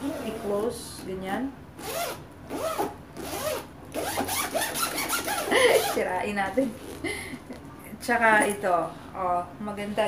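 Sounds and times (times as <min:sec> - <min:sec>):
zipper pulled back and forth: 0:00.0 - 0:00.6, 0:01.8 - 0:06.0.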